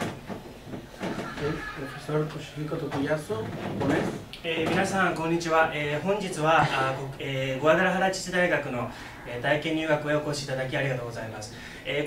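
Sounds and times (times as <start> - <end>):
man speaking: 1.4 - 12.0.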